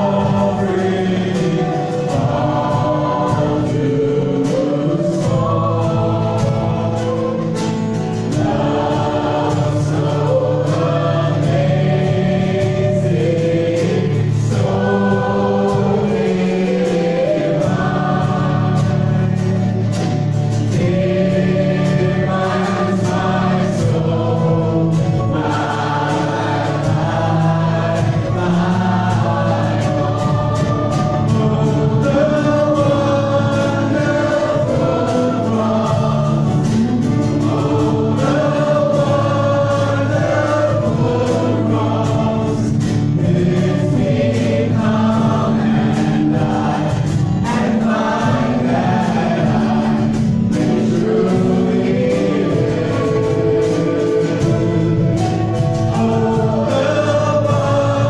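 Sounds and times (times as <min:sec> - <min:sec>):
acoustic and electric guitars: 0:00.0 - 0:58.0
drum kit with cymbal strikes: 0:00.0 - 0:58.0
man and woman singing: 0:00.0 - 0:58.0.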